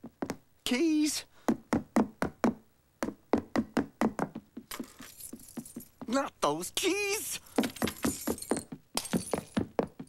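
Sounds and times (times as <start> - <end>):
cartoon footsteps on stairs: 0.0 - 0.8, 1.4 - 10.0.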